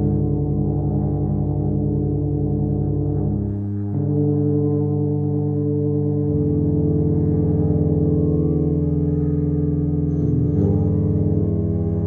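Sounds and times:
tubas holding low chord: 0.0s - 12.0s.

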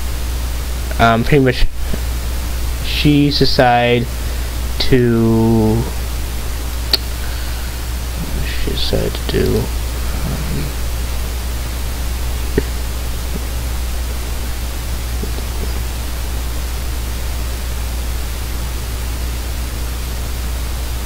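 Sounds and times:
steady hiss: 0.0s - 21.0s
low hum: 1.7s - 21.0s.

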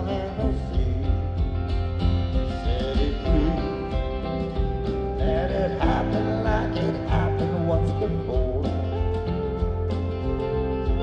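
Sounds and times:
country-folk band playing ballad: 0.0s - 11.0s
gliding slide guitar notes: 3.4s - 11.0s.

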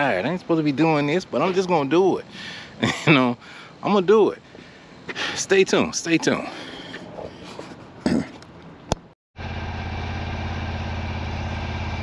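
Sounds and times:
lawn mower engine running: 9.4s - 12.0s.

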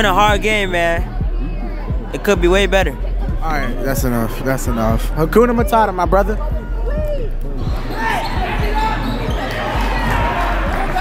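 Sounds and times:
indistinct crowd voices: 0.0s - 11.0s.

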